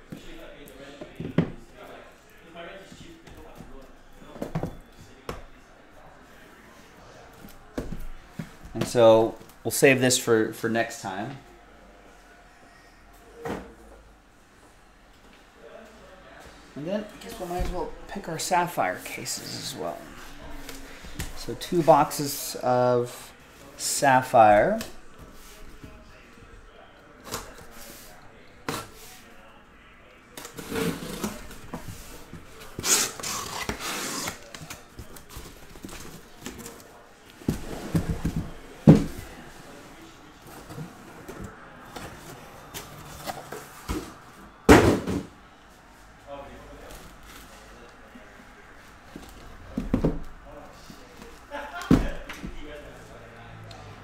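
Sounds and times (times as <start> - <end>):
card boxes sliding and rustling: 30.4 - 36.8.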